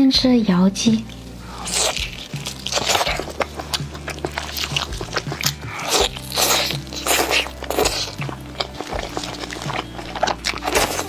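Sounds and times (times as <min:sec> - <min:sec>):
background music: 0:00.0 - 0:11.0
crunchy chewing of chicken skin: 0:01.1 - 0:11.0.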